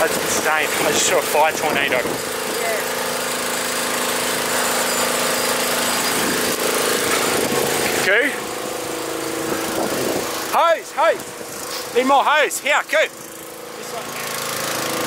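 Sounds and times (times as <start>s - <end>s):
fire roaring: 0.0s - 13.7s
small engine running: 0.0s - 15.0s.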